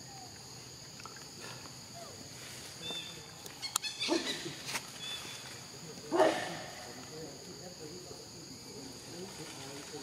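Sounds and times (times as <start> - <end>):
forest insects droning: 0.0 - 10.0
macaque calls: 3.0 - 5.2.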